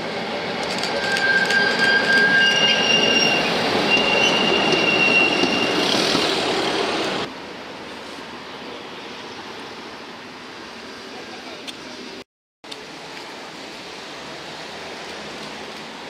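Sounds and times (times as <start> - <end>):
wheels rumbling on rail: 0.0 - 9.6
tram wheels squealing: 0.4 - 7.2.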